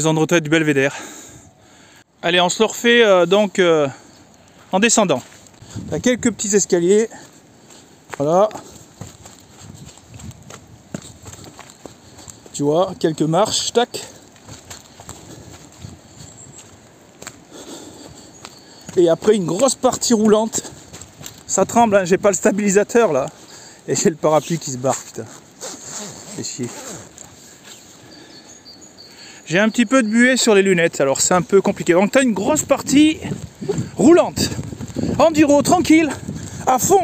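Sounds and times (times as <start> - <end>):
soft outdoor hiss: 0.0 - 37.0
footsteps on wet leafy dirt path: 2.6 - 28.4, 29.1 - 37.0
man's low voice: 4.7 - 7.4, 30.6 - 37.0.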